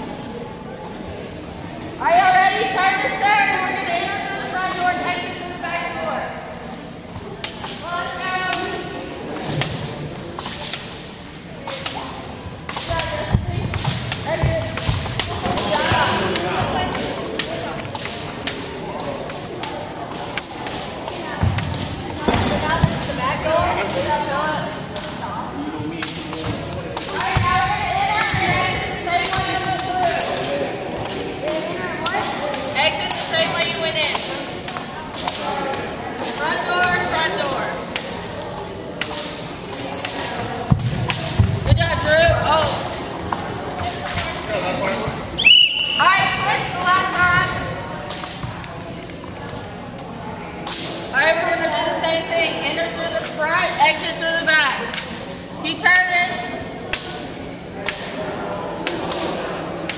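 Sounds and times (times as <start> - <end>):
jump ropes slapping wooden floor: 12.7 - 24.1.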